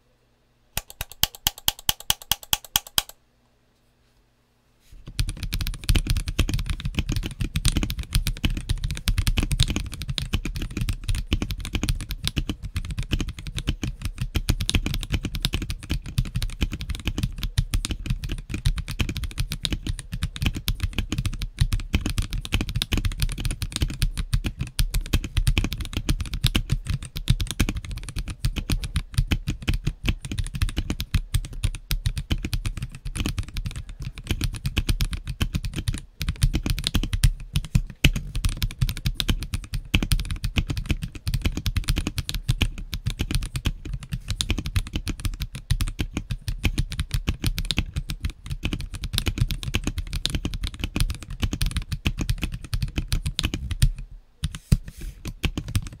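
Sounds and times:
fast typing on mechanical keyboard: 0:00.8 - 0:03.2, 0:05.1 - 0:54.6, 0:55.2 - 0:56.0.

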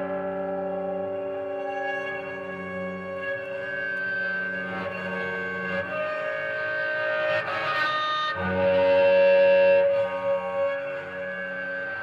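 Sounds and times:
bowed guitar drone: 0:00.0 - 0:12.0.

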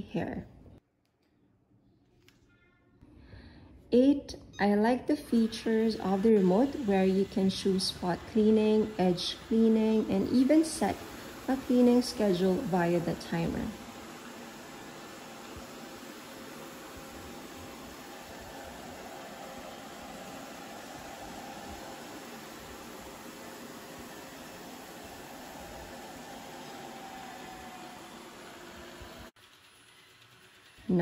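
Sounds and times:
faint steady hum: 0:00.0 - 0:29.3
robot vacuum whirring: 0:05.3 - 0:30.6.

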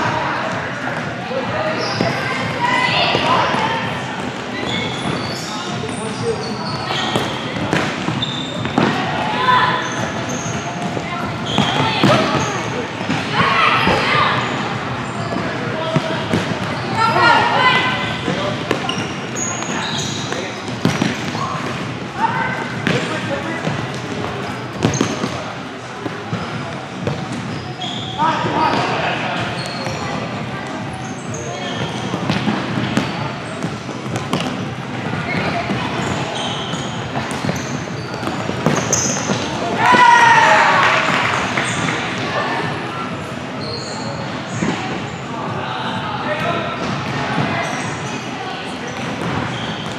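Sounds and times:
shoes squeaking on court: 0:00.4 - 0:42.3, 0:43.0 - 0:45.3, 0:46.4 - 0:49.9
ball kicked and bouncing on court: 0:07.1 - 0:09.0, 0:18.2 - 0:21.9, 0:22.5 - 0:25.4, 0:31.8 - 0:36.2, 0:36.8 - 0:40.1
people shouting: 0:39.7 - 0:40.9.

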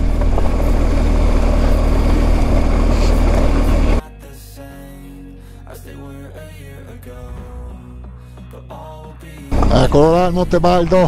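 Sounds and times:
motorcycle engine running: 0:00.0 - 0:04.0, 0:09.5 - 0:11.0
wind rush: 0:00.0 - 0:04.0.

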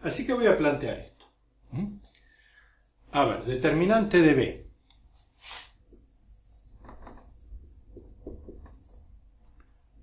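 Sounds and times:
marker squeaking on whiteboard: 0:05.9 - 0:09.1.

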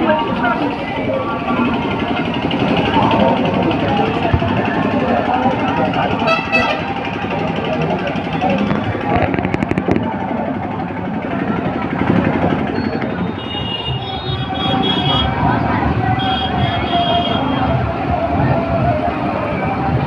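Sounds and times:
crowd voices: 0:00.0 - 0:20.0
motorcycles passing: 0:00.0 - 0:20.0.

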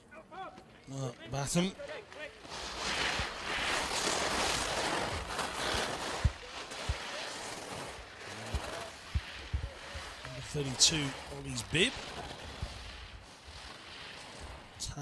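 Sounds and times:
skis scraping on snow: 0:00.2 - 0:15.0.

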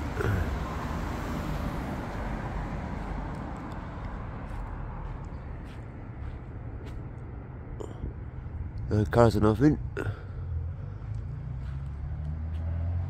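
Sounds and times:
car passing: 0:00.0 - 0:13.0.

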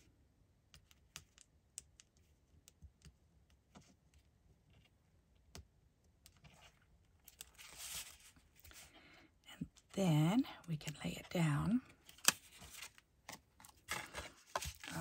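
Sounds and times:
soft paper rustle: 0:06.4 - 0:09.0, 0:11.9 - 0:15.0.

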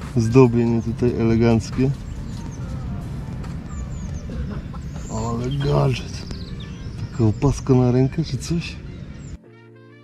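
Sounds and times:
birds chirping: 0:00.0 - 0:09.4
steady low rumble: 0:00.0 - 0:09.4.

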